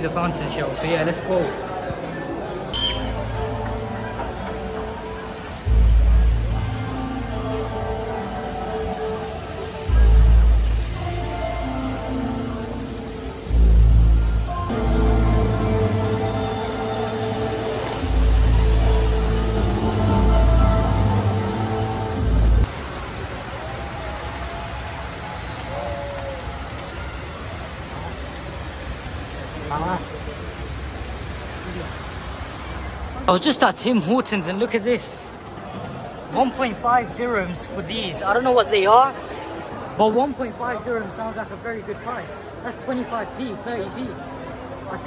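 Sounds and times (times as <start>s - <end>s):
fountain water rushing hiss: 2.8s - 45.0s
music over loudspeakers: 3.0s - 22.7s.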